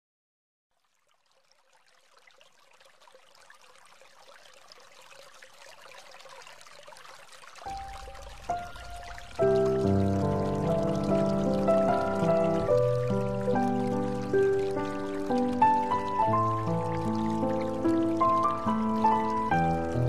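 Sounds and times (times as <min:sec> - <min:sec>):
instrumental background music: 0:08.6 - 0:20.0.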